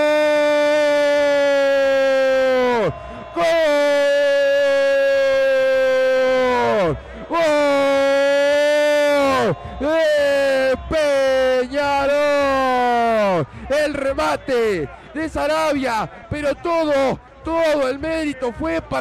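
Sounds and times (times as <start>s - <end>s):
commentator shouting goal: 0.0s - 19.0s
quick breaths: 3.0s - 3.4s, 7.0s - 7.3s, 9.6s - 9.8s, 13.4s - 13.7s, 14.9s - 15.2s.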